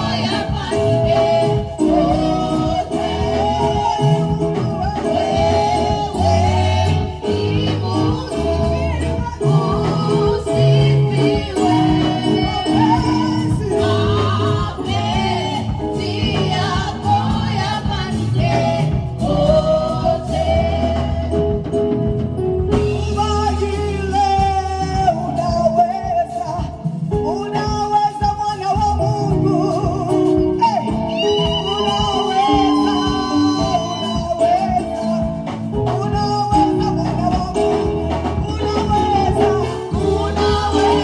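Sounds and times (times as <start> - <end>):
gospel singers: 0.0 - 41.0
keyboard drums and electric guitar band: 0.0 - 41.0.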